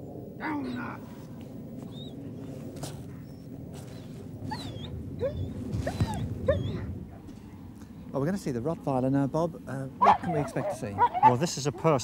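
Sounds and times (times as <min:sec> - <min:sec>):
dog whimpering: 0:03.2 - 0:06.9, 0:10.0 - 0:12.0.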